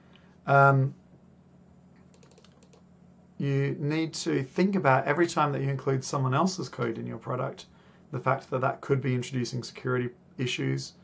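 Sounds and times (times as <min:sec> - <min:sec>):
low steady hum: 0:00.0 - 0:11.0
computer keyboard clicks: 0:02.0 - 0:02.8.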